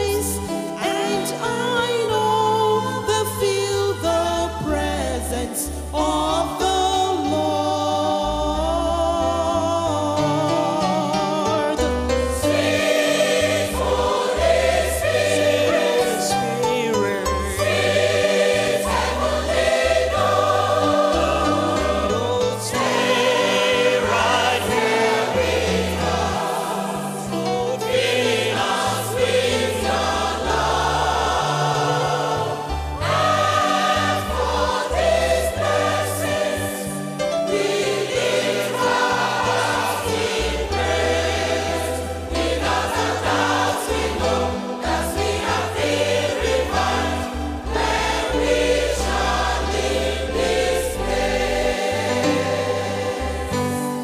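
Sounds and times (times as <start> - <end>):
choir singing gospel song: 0.0 - 54.0.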